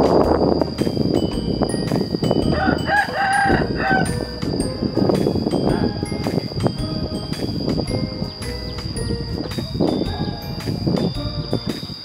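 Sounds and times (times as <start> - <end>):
rooster crowing: 2.5 - 4.2.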